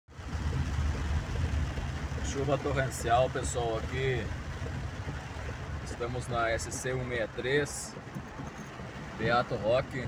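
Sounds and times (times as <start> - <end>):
car low rumble: 0.1 - 10.0
torrential rain on car roof: 0.1 - 10.0.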